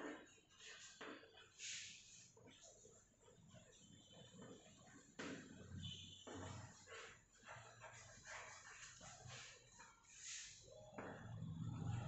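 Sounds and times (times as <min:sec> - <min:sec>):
chalk scratching on blackboard: 0:00.5 - 0:02.8, 0:06.3 - 0:10.7.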